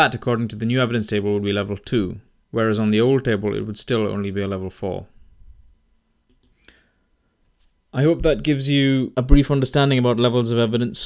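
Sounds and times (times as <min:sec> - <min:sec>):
faint clicks: 0:06.3 - 0:06.8.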